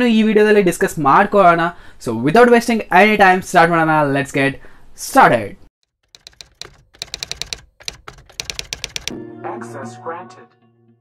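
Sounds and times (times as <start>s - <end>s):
computer keyboard typing: 5.8s - 9.2s.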